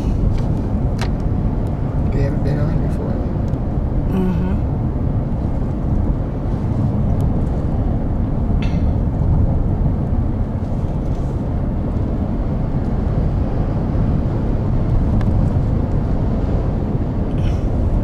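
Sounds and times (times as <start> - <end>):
car road and engine rumble: 0.0 - 18.0.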